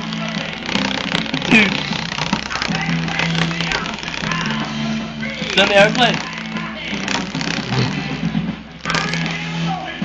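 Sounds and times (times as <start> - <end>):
paper flapping against fan guard: 0.0 - 4.7
electric fan running: 0.0 - 9.8.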